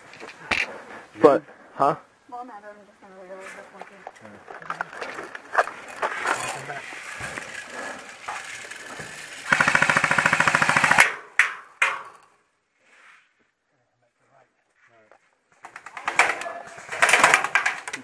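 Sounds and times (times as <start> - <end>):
airsoft gun automatic burst: 7.0 - 11.2.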